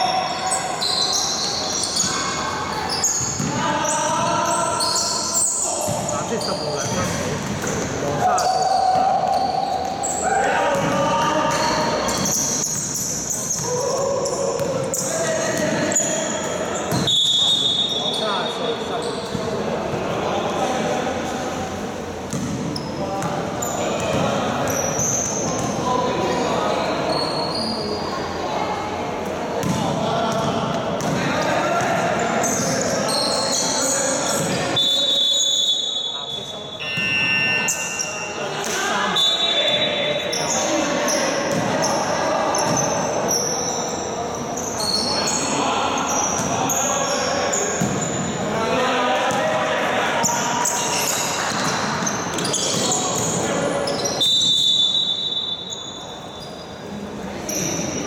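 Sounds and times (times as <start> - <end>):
sneakers squeaking: 0.0 - 19.8, 22.2 - 28.2, 29.5 - 48.6, 50.2 - 58.0
basketball bouncing on wooden court: 14.6 - 14.8, 22.3 - 22.6, 29.6 - 31.2.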